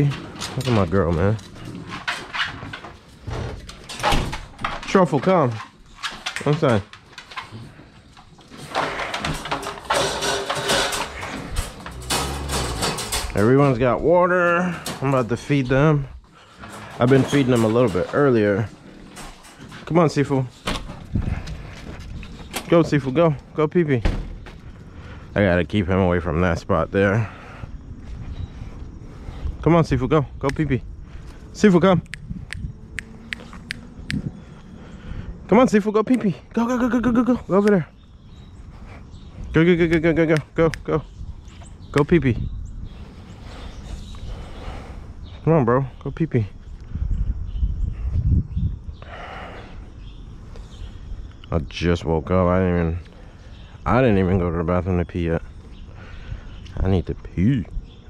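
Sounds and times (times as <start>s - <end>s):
metal crates and bowls clattering: 0.0s - 13.8s, 14.7s - 15.3s, 16.4s - 19.9s
low rumble: 24.2s - 37.2s.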